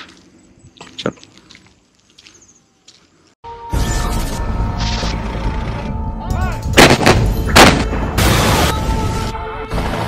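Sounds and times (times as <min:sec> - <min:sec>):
gunshot-like hits: 0:06.8 - 0:08.8.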